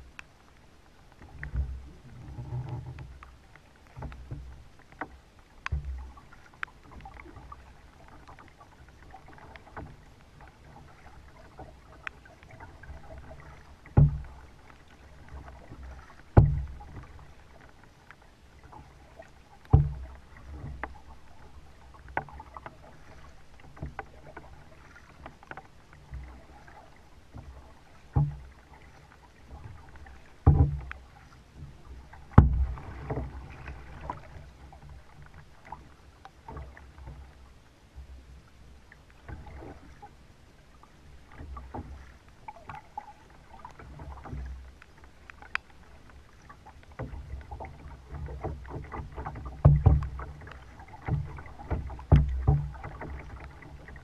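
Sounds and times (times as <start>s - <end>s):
paddle dipping and dripping: 0.0s - 54.0s
water splashing around kayak: 0.0s - 54.0s
hollow knocks on kayak hull: 12.5s - 14.5s, 15.3s - 17.8s, 19.6s - 21.2s, 27.4s - 35.0s, 46.9s - 54.0s.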